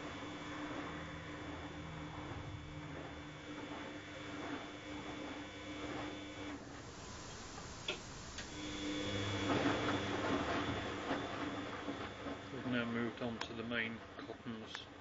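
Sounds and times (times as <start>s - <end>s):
water and laundry swishing in drum: 0.0s - 14.6s
washing machine motor whining: 0.0s - 15.0s.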